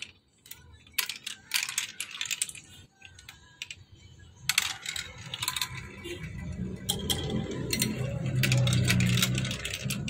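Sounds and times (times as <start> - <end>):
plastic balls clattering down marble run: 0.0 - 10.0.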